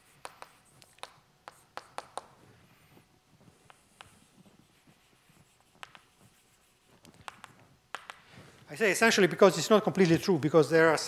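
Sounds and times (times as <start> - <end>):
chalk writing on blackboard: 0.0 - 8.2
sharp chalk taps: 0.0 - 8.6.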